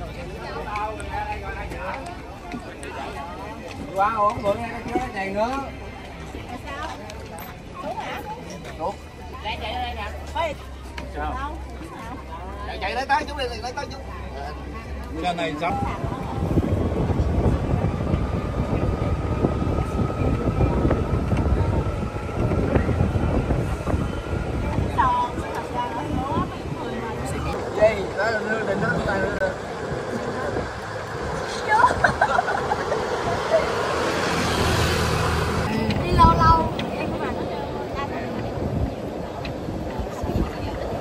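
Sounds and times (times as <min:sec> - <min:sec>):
wind and road noise: 0:00.0 - 0:41.0.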